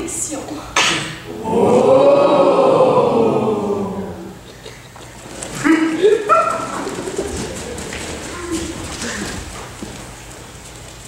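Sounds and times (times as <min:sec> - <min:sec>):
low room murmur: 0:00.0 - 0:11.0.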